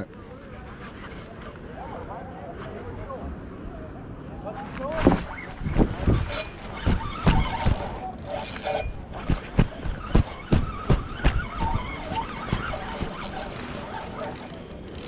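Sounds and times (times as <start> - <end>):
wind rumble on microphone: 0.6 - 14.4
camera handling knocks and rubbing: 5.0 - 7.9.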